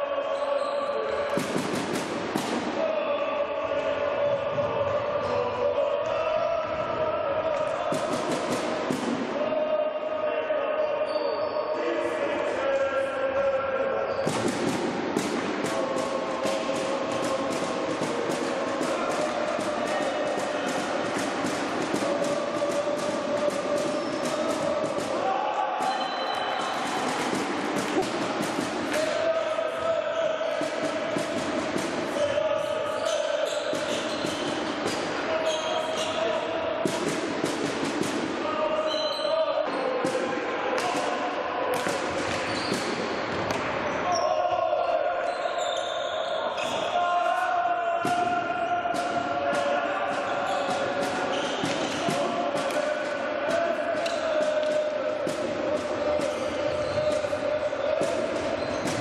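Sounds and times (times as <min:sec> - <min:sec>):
players shouting: 0:00.0 - 0:59.0
hockey sticks clacking on ball: 0:48.9 - 0:59.0.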